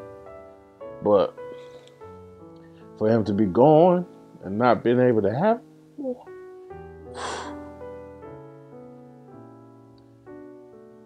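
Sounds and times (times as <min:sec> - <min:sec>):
soft piano-like music: 0:00.0 - 0:11.0.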